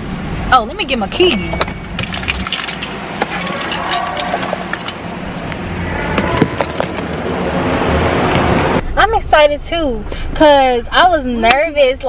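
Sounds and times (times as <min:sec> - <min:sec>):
low background rumble: 0:00.0 - 0:12.0
car keys jingling: 0:01.2 - 0:05.5, 0:06.2 - 0:07.7.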